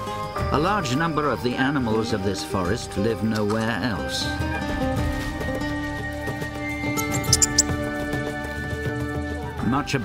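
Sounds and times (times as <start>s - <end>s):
orchestral background music: 0.0s - 10.0s
animal chirping squeaks: 7.0s - 7.8s.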